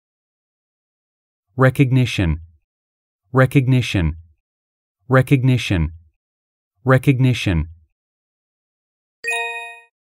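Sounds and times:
bell-like chime: 0:09.2 - 0:10.0.

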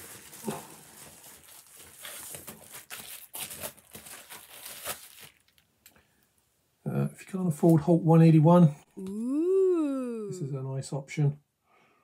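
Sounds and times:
packaging wrap crinkling: 0:00.0 - 0:05.7.

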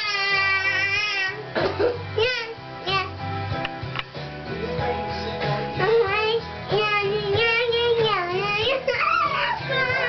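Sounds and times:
recorded band music: 0:00.0 - 0:10.0
boy singing: 0:04.9 - 0:10.0.

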